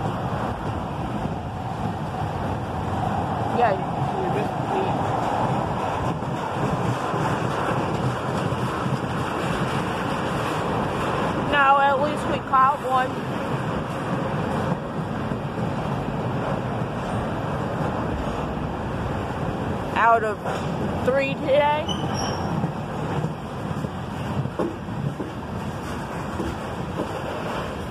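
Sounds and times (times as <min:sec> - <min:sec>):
freight train rolling past: 0:00.0 - 0:27.9
person's voice: 0:21.1 - 0:21.9.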